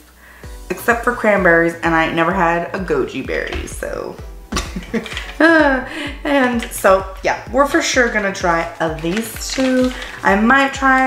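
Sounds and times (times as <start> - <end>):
woman laughing: 4.5 - 6.6.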